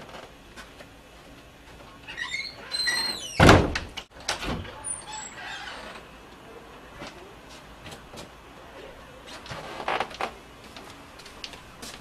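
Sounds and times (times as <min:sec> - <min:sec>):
door squeaking: 0:02.0 - 0:06.1
door slamming shut: 0:02.9 - 0:04.8.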